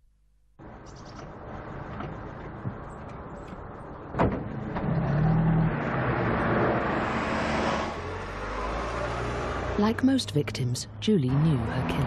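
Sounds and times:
car engine and road noise: 0.6 - 12.0.

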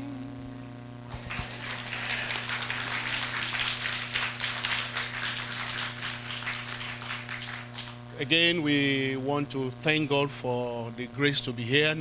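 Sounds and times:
low electrical hum: 0.0 - 12.0
congregation applauding: 1.1 - 8.1.

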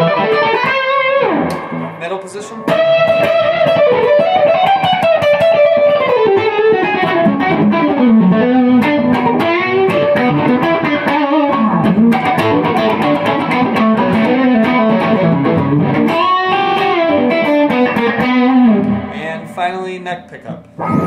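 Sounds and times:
electric guitar lead line: 0.0 - 19.5.

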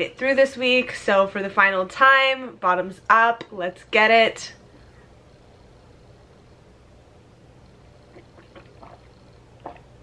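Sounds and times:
low room hum: 0.0 - 10.0
person swallowing: 8.1 - 10.0.

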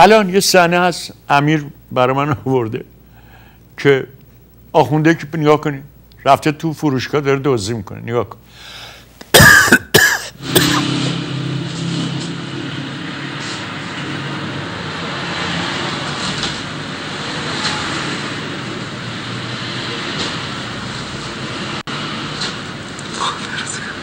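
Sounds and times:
rushing background noise: 9.4 - 24.0
short loud sound: 10.4 - 16.7
low hum: 10.4 - 20.0.

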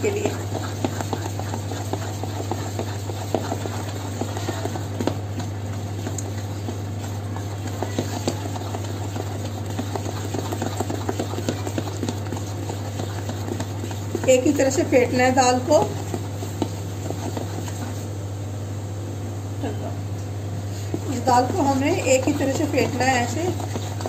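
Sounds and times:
batter beaten by hand in bowl: 0.0 - 18.2, 20.7 - 24.0
steady low hum: 0.0 - 24.0.

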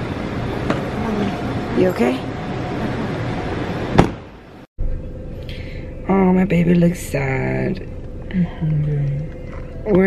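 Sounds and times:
steady background noise: 0.0 - 10.0
car door slamming: 3.9 - 4.3.

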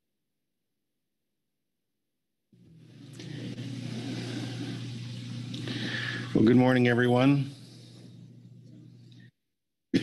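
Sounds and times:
low electrical hum with hiss: 2.6 - 9.4.

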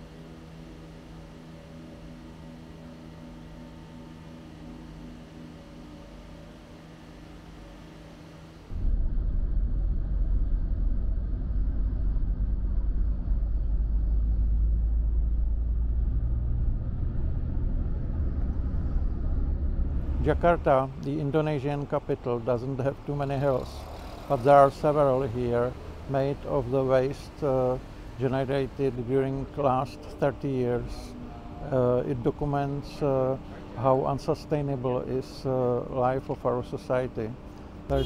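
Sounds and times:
low hum with held tones: 0.0 - 38.0
loud low rumble: 8.7 - 21.4.

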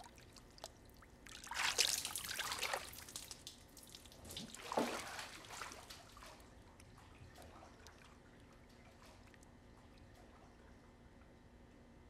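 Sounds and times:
water splashing and trickling: 0.0 - 10.7.

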